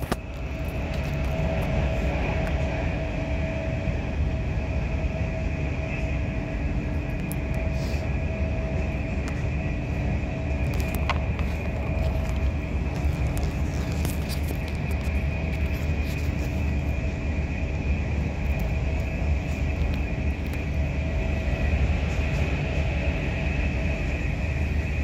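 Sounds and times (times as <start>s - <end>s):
constant hum: 0.0s - 25.0s
train wheels rumbling on rail: 0.0s - 25.0s.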